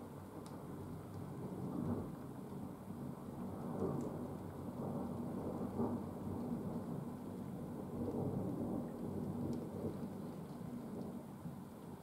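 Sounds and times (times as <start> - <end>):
rain falling: 0.0 - 12.0.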